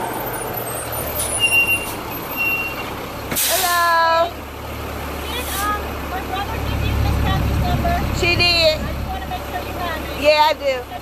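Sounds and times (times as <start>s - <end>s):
brakes squealing: 0.0s - 11.0s
bus engine running: 0.0s - 11.0s.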